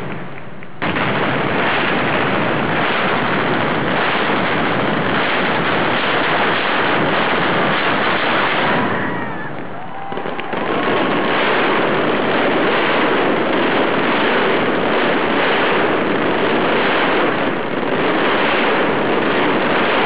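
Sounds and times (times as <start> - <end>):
firecracker barrage: 0.0 - 20.0.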